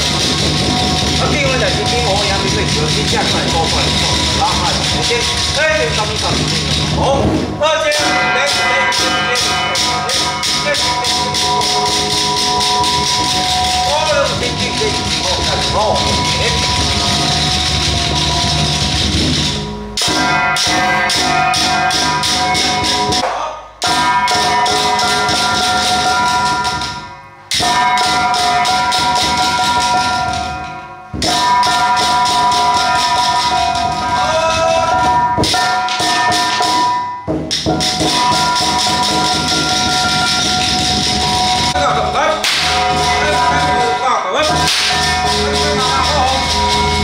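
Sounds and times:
drum and metal percussion: 0:00.0 - 0:47.0
steady ringing tones: 0:00.0 - 0:47.0.

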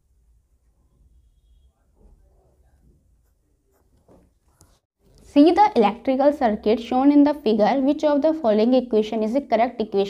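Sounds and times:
pen scratching on paper: 0:03.0 - 0:04.9.

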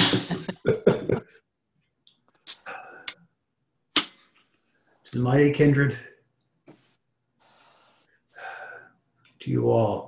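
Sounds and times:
man breathing: 0:02.6 - 0:03.2, 0:07.4 - 0:09.1
man gasping: 0:08.4 - 0:09.0.

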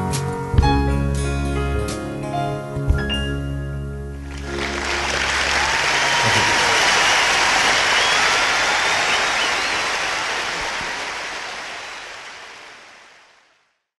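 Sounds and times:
audience applauding: 0:04.2 - 0:13.8.

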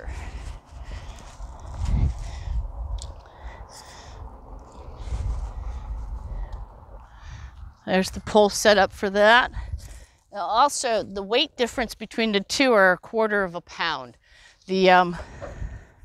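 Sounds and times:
low rumble: 0:00.0 - 0:10.4.

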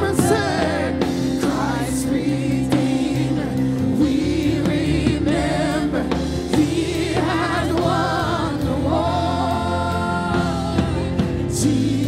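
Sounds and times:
sustained instrumental accompaniment: 0:00.0 - 0:12.0
women singing gospel song: 0:00.0 - 0:12.0.

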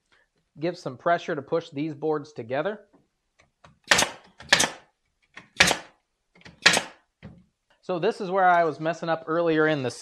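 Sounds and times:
pneumatic nailer firing into wood: 0:03.8 - 0:07.0.

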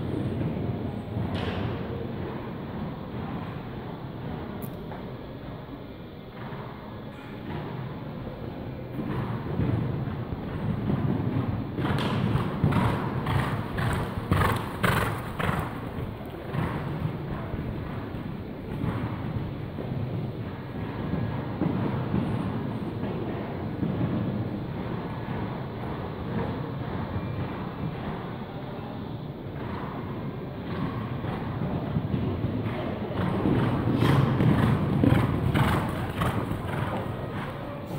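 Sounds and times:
low hall rumble: 0:00.0 - 0:37.9
horse cantering on sand: 0:08.9 - 0:28.5, 0:29.5 - 0:37.9.

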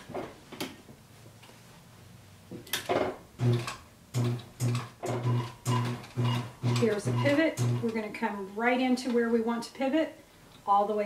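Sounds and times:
sewing machine stitching: 0:03.4 - 0:08.0.

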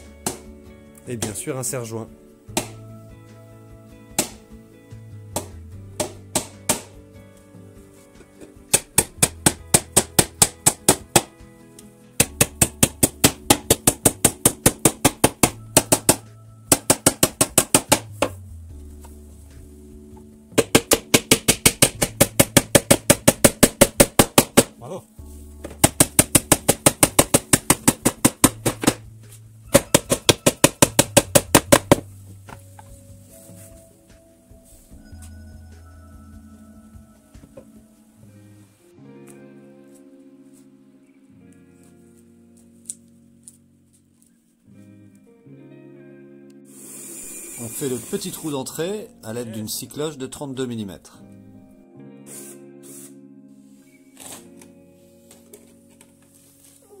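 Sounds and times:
background music with held notes: 0:00.0 - 0:57.0
hammer tapping nails into wood: 0:05.4 - 0:07.0, 0:08.2 - 0:11.4, 0:12.2 - 0:18.4, 0:20.5 - 0:24.8, 0:25.6 - 0:29.0, 0:29.7 - 0:32.1.

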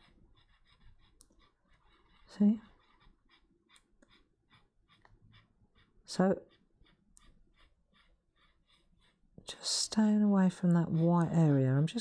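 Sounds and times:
pen nib scratching on paper: 0:00.0 - 0:12.0.

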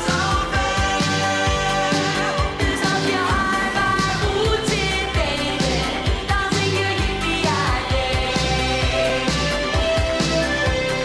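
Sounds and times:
pop song with singer: 0:00.0 - 0:11.0.

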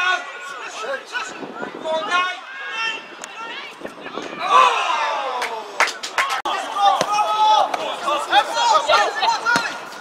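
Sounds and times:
men shouting and cheering: 0:00.0 - 0:10.0.

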